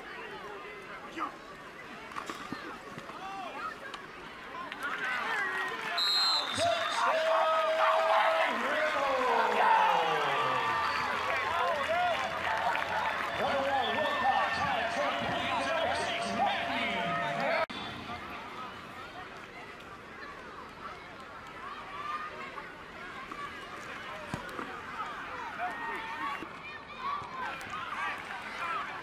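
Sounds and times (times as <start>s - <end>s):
spectators cheering and shouting: 4.4s - 19.5s, 20.3s - 29.0s.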